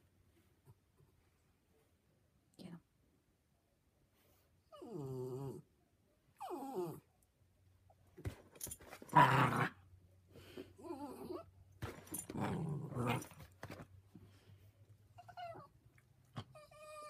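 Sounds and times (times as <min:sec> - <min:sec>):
dog whining: 0:06.4 - 0:07.1, 0:10.8 - 0:11.5, 0:15.1 - 0:17.0.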